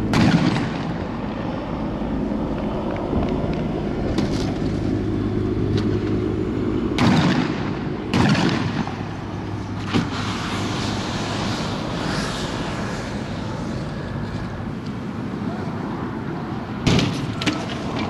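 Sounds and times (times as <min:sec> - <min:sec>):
loud bangs: 0:00.0 - 0:01.1, 0:07.0 - 0:09.2, 0:16.8 - 0:18.0
vehicle engine hum: 0:00.0 - 0:18.0.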